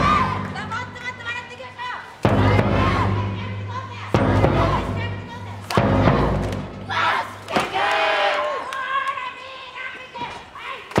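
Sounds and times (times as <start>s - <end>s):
loud drawn-out shout: 0.0s - 0.5s, 6.8s - 9.8s
bass drum boom: 2.3s - 6.9s.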